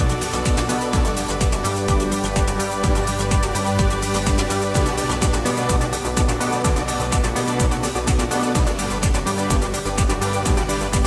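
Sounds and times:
fast hi-hats: 0.0 - 11.0
four-on-the-floor kick drum: 0.0 - 11.0
held synth chords: 0.0 - 11.0.

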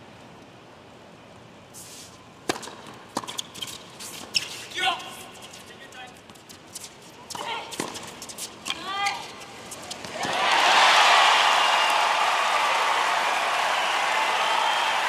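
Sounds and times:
shoe squeaks: 1.8 - 10.1
tennis ball bouncing: 2.4 - 4.4, 7.3 - 10.4
rackets striking tennis ball: 2.4 - 5.1, 6.2 - 10.4.

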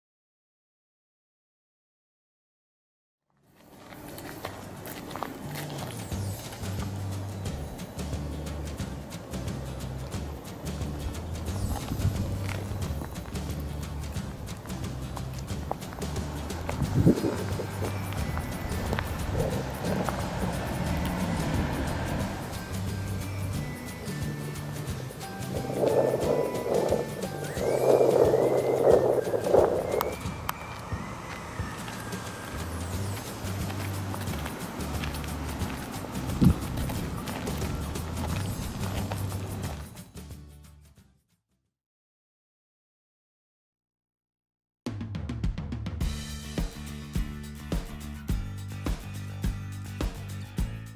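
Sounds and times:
footsteps crunching on gravel: 3.4 - 7.7, 10.2 - 40.0
background music: 4.0 - 41.1, 46.0 - 50.9.

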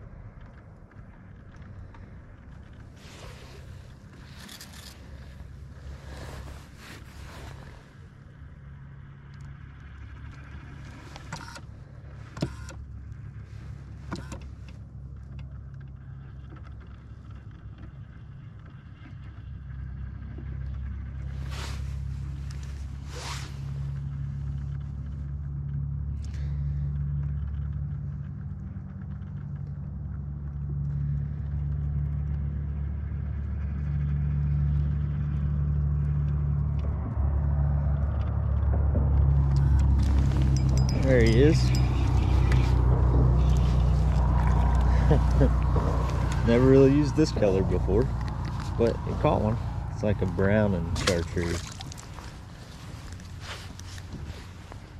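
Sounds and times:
electric trolling motor humming: 19.4 - 54.9.

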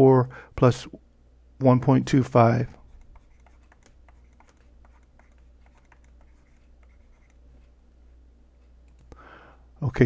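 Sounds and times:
low steady hum: 0.0 - 10.0
stylus clicks and taps: 2.9 - 7.8, 8.6 - 9.2.

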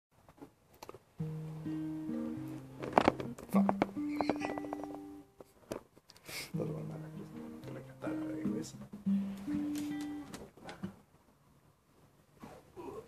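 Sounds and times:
acoustic guitar chords strummed: 1.2 - 5.3, 6.5 - 10.4.

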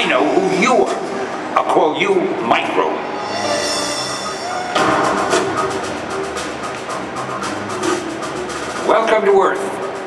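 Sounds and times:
trailer music with driving percussion: 3.2 - 10.0.

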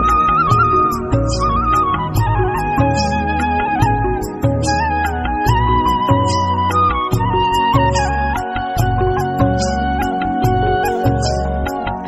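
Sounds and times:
background music with bass and percussion: 0.0 - 12.0.

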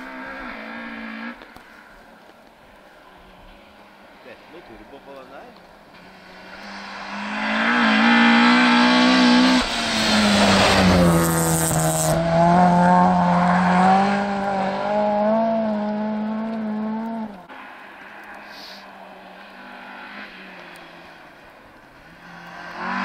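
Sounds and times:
rally car engine passing: 0.0 - 1.9, 3.0 - 23.0.

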